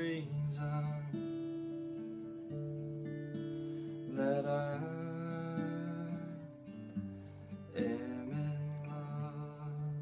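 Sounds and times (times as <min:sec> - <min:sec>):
acoustic guitar chord: 0:00.0 - 0:10.0.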